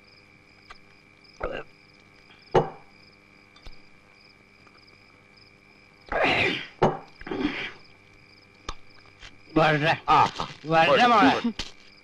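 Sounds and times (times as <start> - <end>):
night insects chirring: 0.0 - 12.0.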